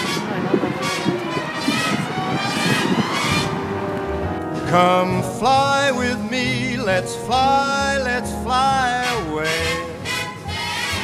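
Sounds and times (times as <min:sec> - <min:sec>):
car engine: 0:00.0 - 0:11.0
road noise: 0:00.0 - 0:11.0
low rumble: 0:00.3 - 0:09.9.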